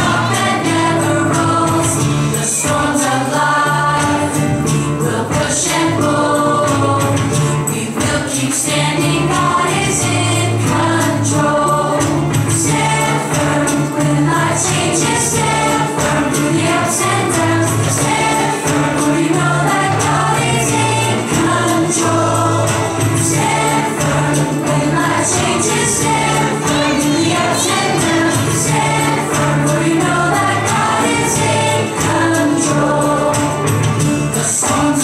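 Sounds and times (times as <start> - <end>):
band with steady beat: 0.0 - 35.0
group singing children's song: 0.0 - 35.0.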